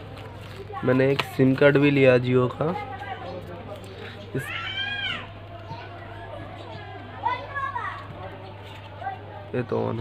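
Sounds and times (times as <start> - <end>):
children's voices: 4.4 - 9.6.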